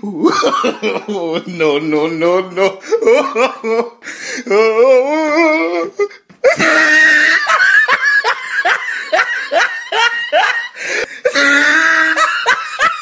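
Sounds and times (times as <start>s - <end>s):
person laughing hard: 0.0s - 1.6s, 2.7s - 13.0s.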